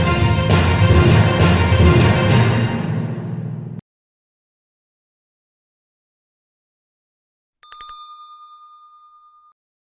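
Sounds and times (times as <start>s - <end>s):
notification bell ding: 7.6s - 9.6s.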